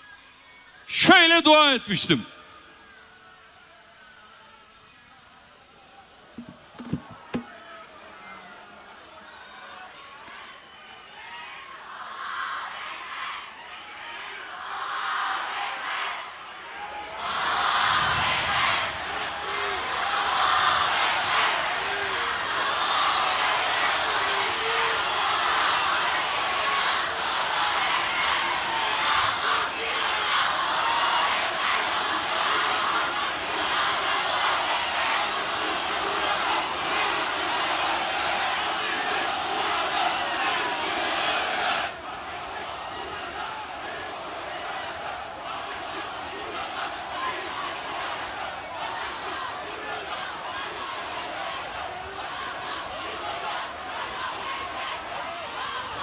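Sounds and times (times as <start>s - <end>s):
crowd shouting and cheering: 0.0s - 56.0s.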